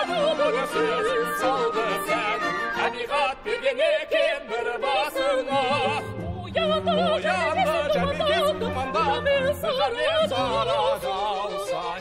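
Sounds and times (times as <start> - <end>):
operatic singer with vibrato: 0.0 - 12.0
orchestral accompaniment: 0.0 - 12.0.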